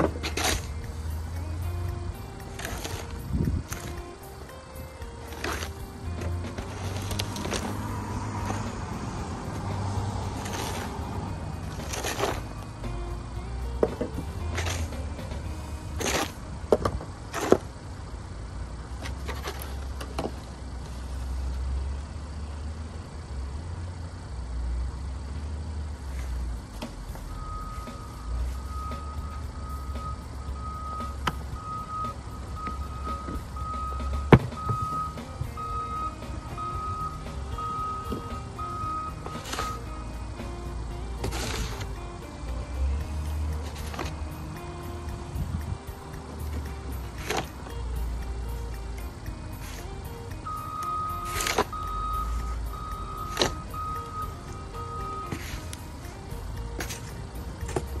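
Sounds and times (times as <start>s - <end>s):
snow shovels scraping snow: 0.0s - 12.8s, 14.2s - 16.4s, 38.4s - 40.2s, 41.2s - 42.0s, 43.1s - 44.5s, 49.5s - 50.0s, 50.7s - 58.0s
low vehicle engine rumble: 0.0s - 58.0s
backup beeper beeping: 27.3s - 39.9s, 50.4s - 55.4s.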